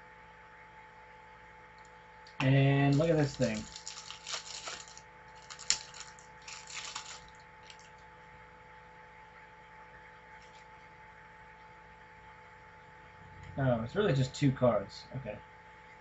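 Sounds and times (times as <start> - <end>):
faint steady hum: 0.0 - 16.0
card pack crinkling: 2.8 - 8.0.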